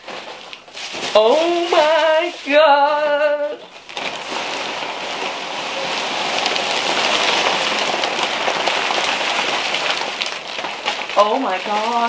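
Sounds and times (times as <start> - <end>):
packing peanuts tumbling: 0.0 - 12.0
wrapping paper crinkling: 0.0 - 12.0.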